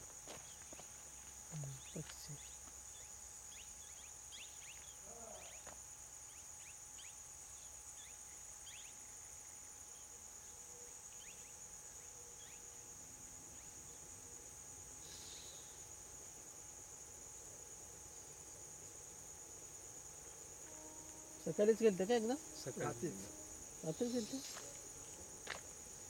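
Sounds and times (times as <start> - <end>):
insects droning: 0.0 - 26.0
faint chirps: 1.5 - 12.8, 15.0 - 15.9, 20.7 - 25.2.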